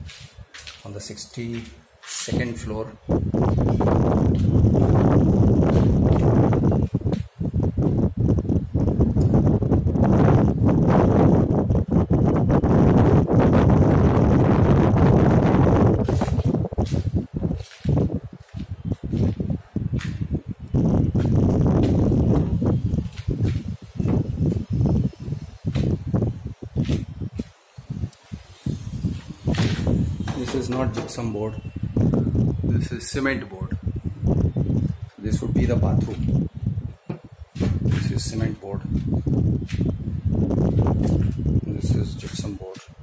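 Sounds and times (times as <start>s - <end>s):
low rumbling on microphone: 0.0s - 43.0s.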